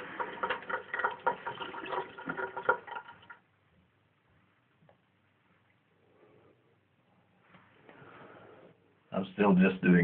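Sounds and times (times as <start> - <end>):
tap water running into sink: 0.0 - 3.4.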